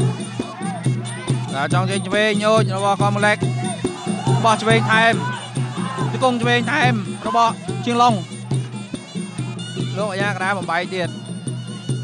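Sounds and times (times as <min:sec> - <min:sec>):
regular drum beat: 0:00.0 - 0:10.8.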